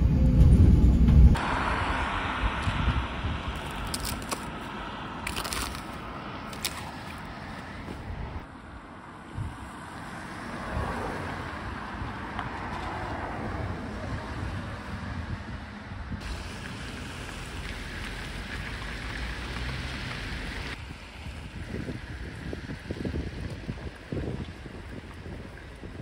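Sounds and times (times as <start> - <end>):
wind rumble on microphone: 0.0 - 8.5, 9.3 - 9.8, 10.4 - 26.0
traffic hiss: 1.4 - 7.8, 16.2 - 23.3.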